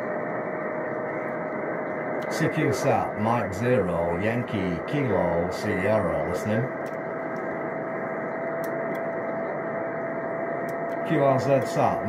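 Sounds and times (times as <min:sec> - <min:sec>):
radio receiver hiss: 0:00.0 - 0:12.0
steady tone: 0:00.0 - 0:12.0.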